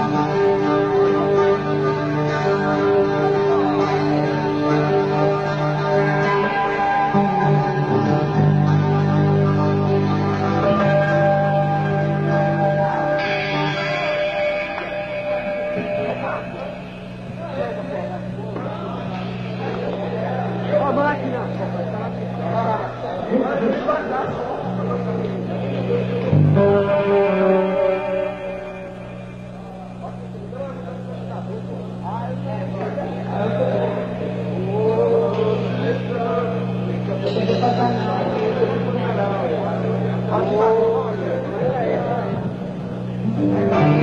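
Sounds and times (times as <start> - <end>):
low drone from stage instruments: 0.0 - 44.0
low electrical hum: 0.0 - 44.0
voices talking: 0.0 - 44.0.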